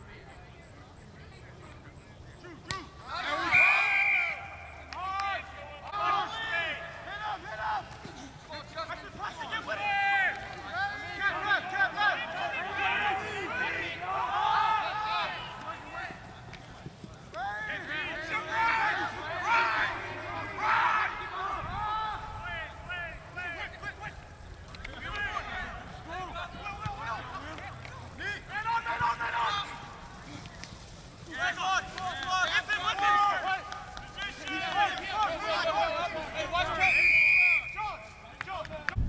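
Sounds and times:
voices shouting and calling: 0.0s - 39.0s
referee's whistle blast: 3.4s - 4.8s, 36.7s - 38.0s.

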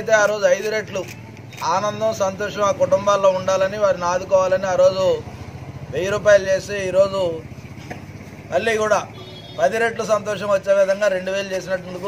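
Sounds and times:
man speaking: 0.0s - 5.3s, 5.9s - 7.5s, 8.5s - 12.0s.

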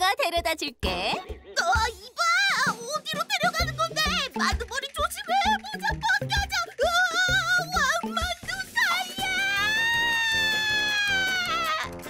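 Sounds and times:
background music with steady beat: 0.0s - 12.0s
cartoon character high-pitched scream: 8.8s - 12.0s.

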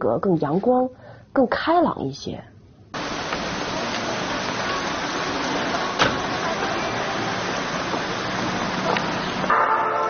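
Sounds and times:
rain falling on street: 3.0s - 10.0s.

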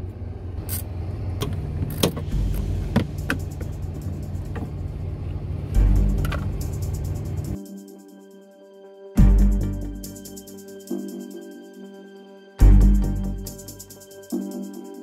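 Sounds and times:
low engine rumble: 0.0s - 7.7s, 9.2s - 10.7s, 12.6s - 14.3s
background music: 2.2s - 15.0s.

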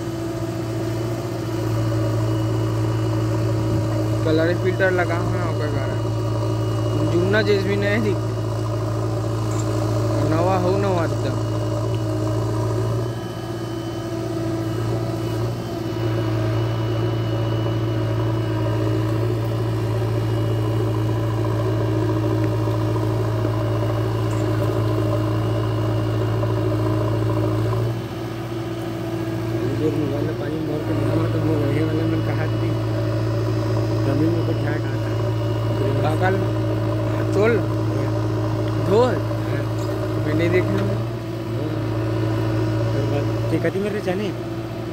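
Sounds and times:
backhoe digging soil: 0.0s - 44.9s
diesel engine hum: 0.0s - 44.9s.

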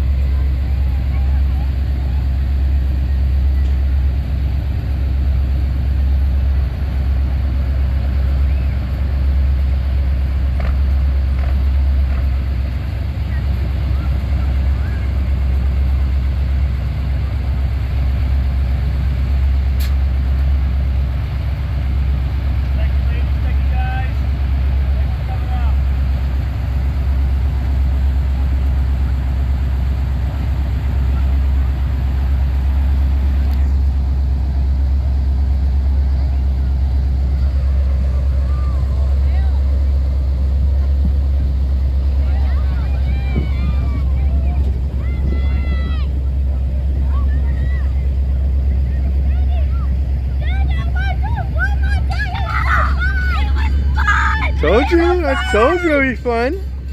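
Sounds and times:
truck engine low rumble: 0.0s - 56.9s.

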